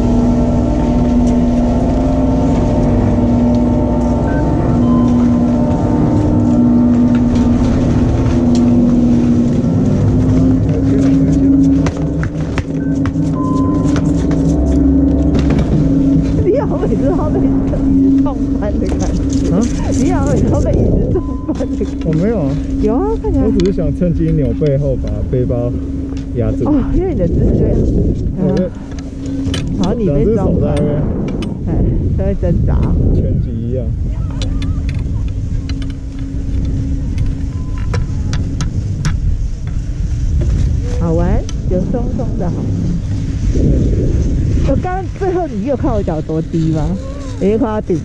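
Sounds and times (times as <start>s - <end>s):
chairlift machinery humming: 0.0s - 48.0s
short high tones: 2.2s - 24.2s.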